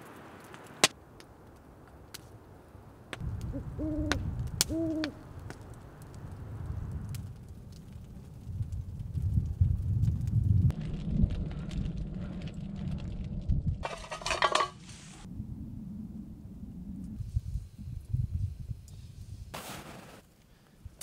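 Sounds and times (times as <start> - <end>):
low rumbling noise: 3.2 - 13.9, 15.0 - 18.8
owl hooting: 3.5 - 5.2.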